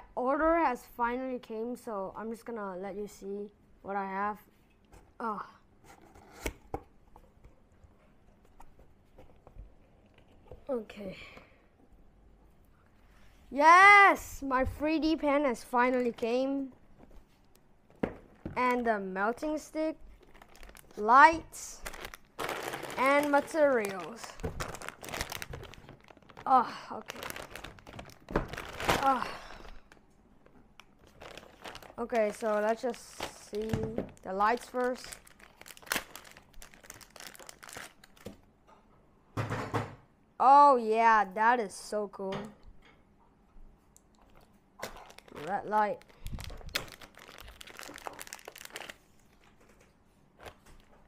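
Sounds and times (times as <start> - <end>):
plastic bag crinkling: 18.6 - 30.0, 30.8 - 38.4, 44.2 - 49.8.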